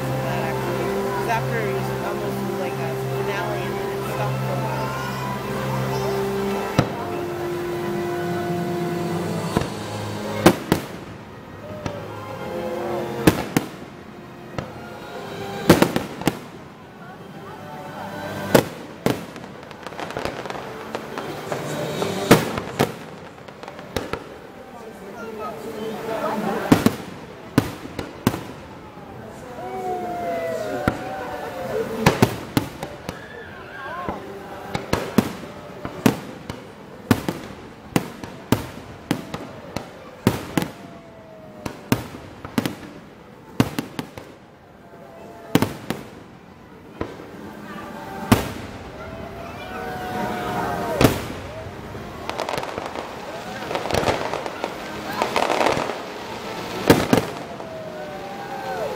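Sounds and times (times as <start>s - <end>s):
fireworks bursting: 0.0s - 44.6s, 45.2s - 58.9s
spectators' voices: 0.0s - 58.9s.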